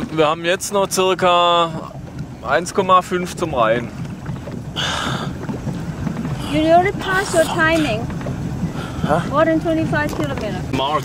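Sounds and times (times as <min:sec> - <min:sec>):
motorboat engine rumbling: 0:00.0 - 0:11.0.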